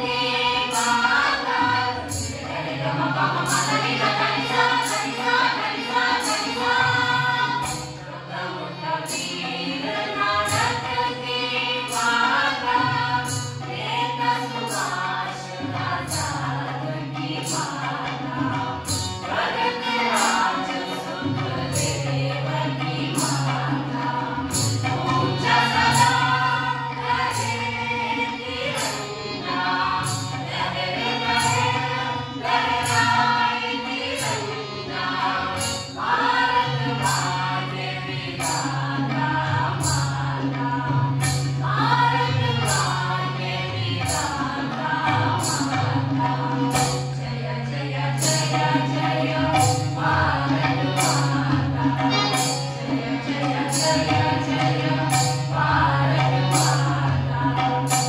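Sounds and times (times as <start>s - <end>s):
hand drum or cymbal strikes: 0.0s - 58.0s
harmonium drone: 0.0s - 58.0s
mixed chorus singing in unison: 0.0s - 58.0s.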